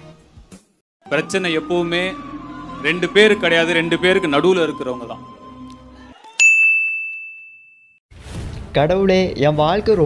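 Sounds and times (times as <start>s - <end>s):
bell-like chime ding: 6.4s - 8.0s.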